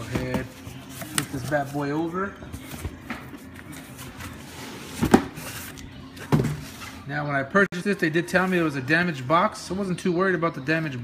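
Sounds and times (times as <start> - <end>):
household background noise: 0.0 - 11.0.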